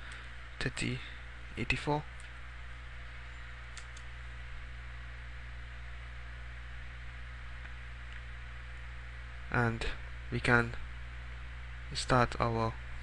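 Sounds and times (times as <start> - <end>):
electrical hum and hiss: 0.0 - 13.0.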